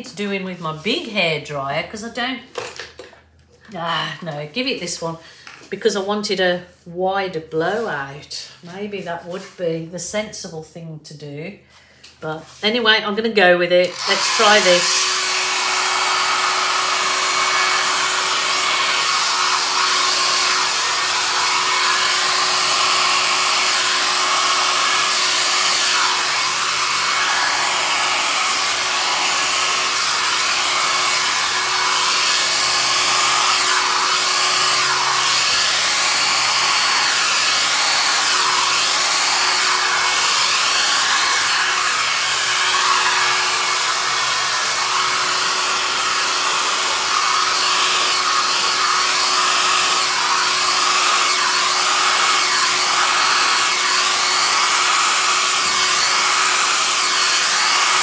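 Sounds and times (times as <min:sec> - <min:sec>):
hair dryer running: 0:13.8 - 0:58.0.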